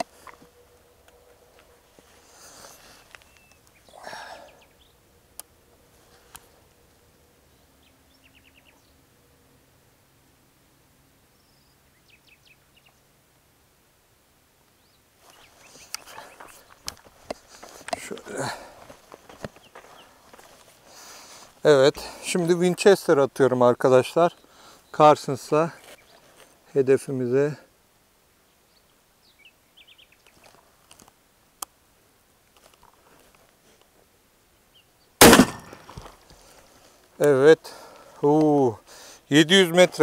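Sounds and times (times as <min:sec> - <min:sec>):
footsteps on gravel: 0:15.2 - 0:21.0
clicks and rustles: 0:32.5 - 0:33.9
shotgun handling noises: 0:35.2 - 0:36.4.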